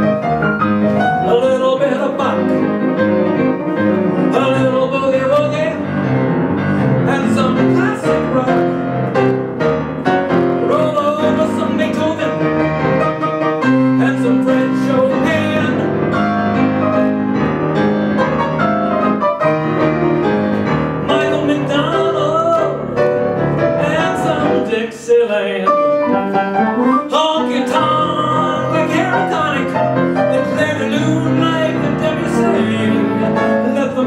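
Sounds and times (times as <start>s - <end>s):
grand piano playing: 0.0s - 34.0s
man singing: 1.2s - 2.9s, 4.2s - 6.1s, 7.0s - 9.1s, 10.3s - 12.8s, 13.8s - 16.1s, 21.0s - 26.2s, 26.8s - 34.0s.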